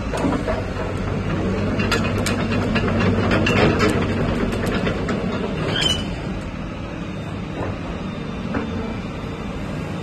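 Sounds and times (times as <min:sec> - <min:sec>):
excavator diesel engine running: 0:00.0 - 0:10.0
metal clanks and clicks: 0:00.1 - 0:06.0
high squeak: 0:05.7 - 0:06.2.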